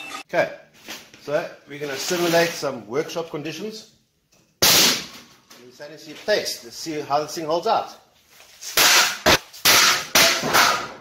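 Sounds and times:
metal stand crashing and clattering: 0:08.8 - 0:11.0.

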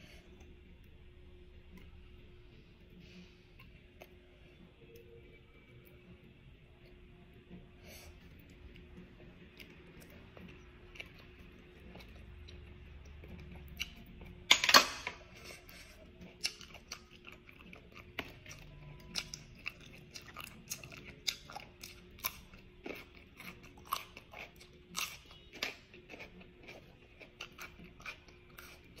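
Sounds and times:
person chewing: 0:08.1 - 0:14.4, 0:15.2 - 0:29.0.

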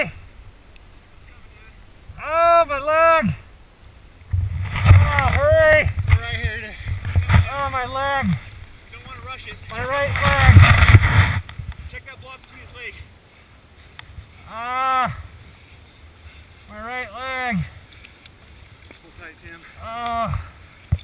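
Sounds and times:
snow being dug: 0:04.3 - 0:11.5
man's muffled cries: 0:14.5 - 0:15.3, 0:19.8 - 0:20.5.

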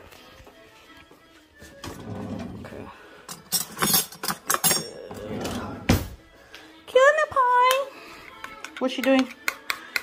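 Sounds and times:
loud cutlery clack: 0:03.3 - 0:05.0
silverware clinking: 0:03.3 - 0:05.2.

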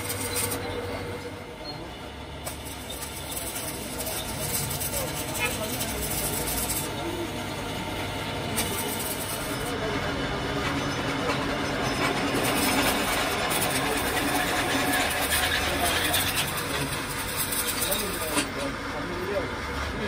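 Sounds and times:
welding arc hissing: 0:00.0 - 0:00.8, 0:02.3 - 0:09.8, 0:12.3 - 0:18.5.

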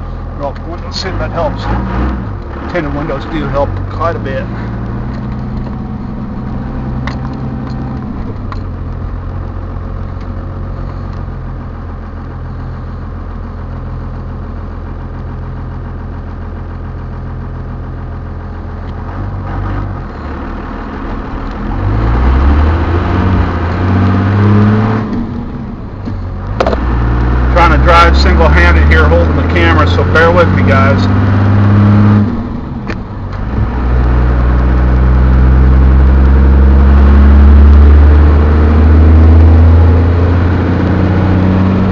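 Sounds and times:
diesel engine idling and revving: 0:00.0 - 0:41.9.

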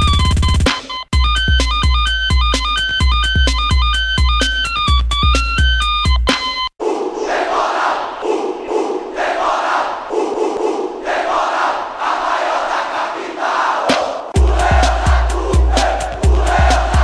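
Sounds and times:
electronic music beat: 0:00.0 - 0:06.7, 0:14.3 - 0:17.0
stadium crowd chanting: 0:06.8 - 0:17.0.

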